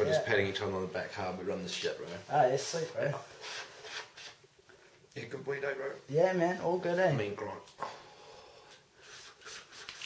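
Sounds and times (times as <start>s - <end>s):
hissing draw on a joint: 3.3s - 4.5s
man breathing: 7.8s - 8.9s.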